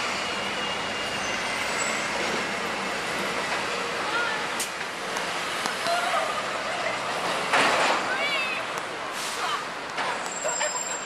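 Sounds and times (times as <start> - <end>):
bus passing: 0.0 - 11.0
city street traffic: 0.0 - 11.0
bus air brake hiss: 9.1 - 9.6.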